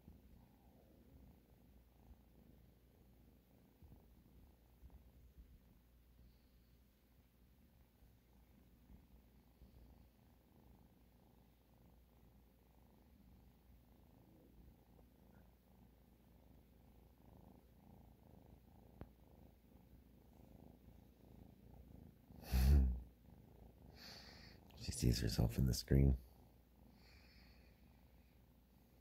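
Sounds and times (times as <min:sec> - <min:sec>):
kitten purring: 0:00.0 - 0:29.0.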